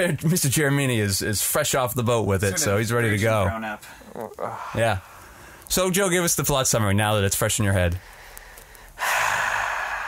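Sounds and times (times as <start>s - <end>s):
man sighing: 3.8s - 5.1s.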